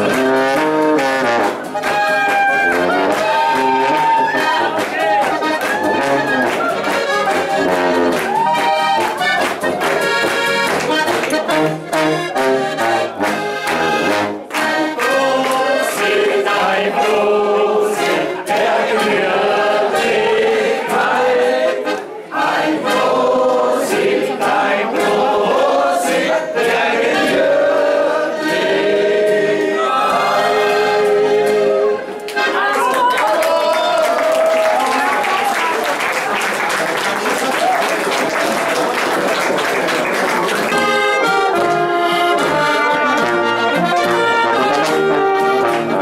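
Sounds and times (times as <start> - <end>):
folk band with accordion: 0.0 - 33.1, 39.0 - 46.0
voices singing along: 14.6 - 32.2.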